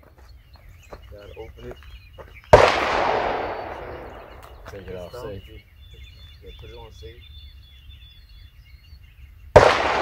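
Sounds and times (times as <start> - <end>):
shotgun shot: 2.5 - 4.6, 9.6 - 10.0.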